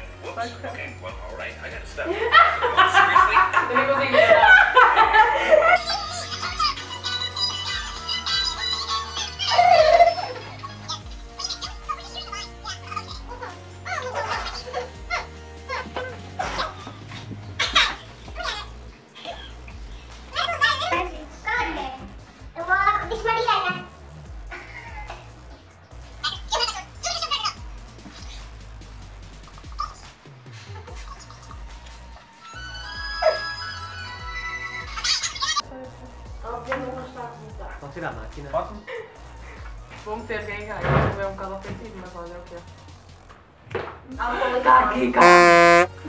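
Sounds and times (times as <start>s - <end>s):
background music: 0.0s - 46.0s.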